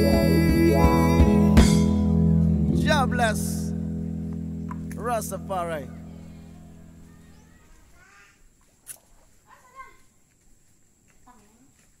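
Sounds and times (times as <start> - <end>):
song chord: 0.0 - 7.4
short pitched calls: 5.7 - 8.4.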